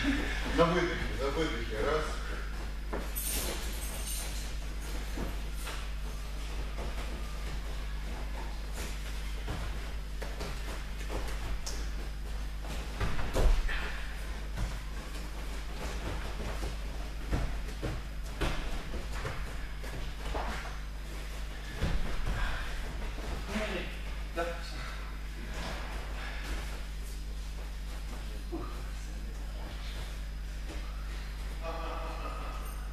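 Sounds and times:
steady low hum: 0.0 - 32.9
body thudding on foam mats: 2.3 - 24.4.

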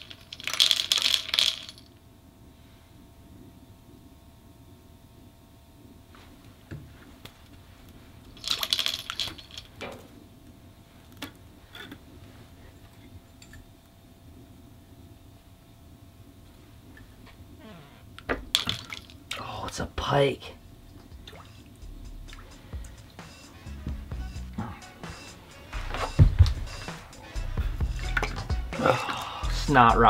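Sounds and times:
faint steady hum: 0.0 - 30.0
water splashing and trickling: 18.5 - 19.4, 21.0 - 21.7, 27.9 - 29.2.

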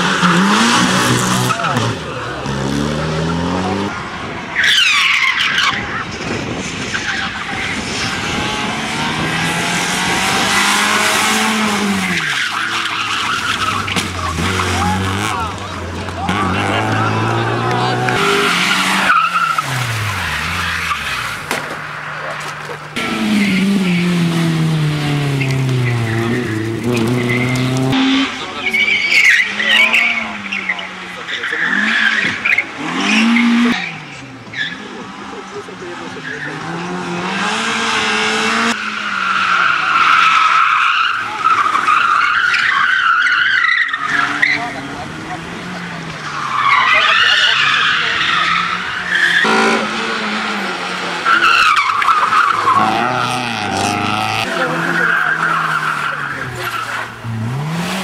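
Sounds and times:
rally car engines revving: 0.0 - 58.0
tyres squealing: 9.4 - 21.5, 38.7 - 58.0.

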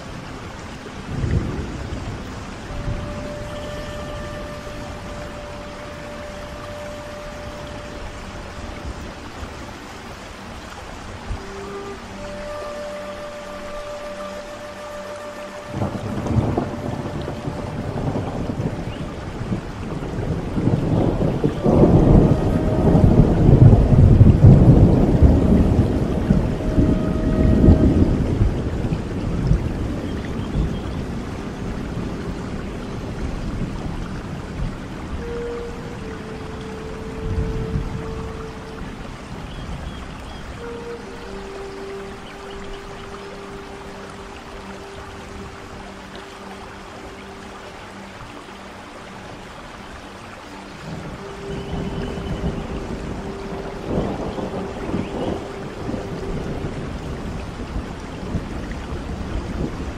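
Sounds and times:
flute playing long notes: 0.0 - 59.9
steady rain: 0.0 - 59.9
rolling thunder rumble: 1.0 - 5.5, 15.7 - 41.4, 50.8 - 59.9.

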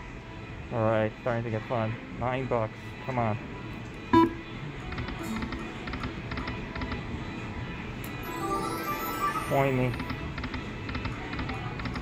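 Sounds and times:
slot machine spin tone: 8.2 - 10.2.

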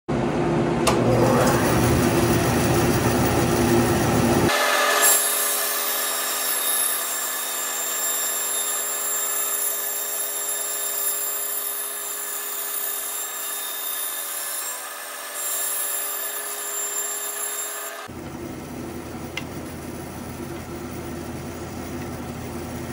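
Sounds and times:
bandsaw cutting wood: 0.9 - 18.2.

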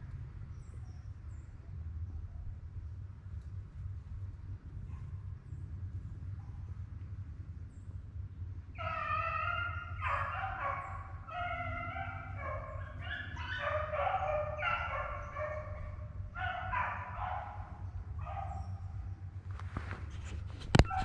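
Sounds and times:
hounds baying: 8.8 - 19.4, 20.2 - 21.0.

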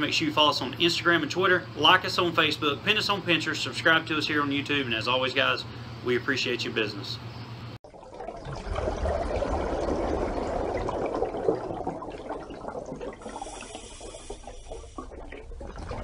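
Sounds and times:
rushing trickling water: 7.8 - 16.0.

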